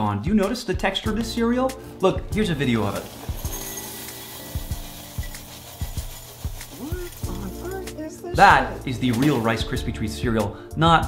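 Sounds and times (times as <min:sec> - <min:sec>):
cereal poured into glass bowl: 0:02.6 - 0:08.0, 0:09.1 - 0:09.7.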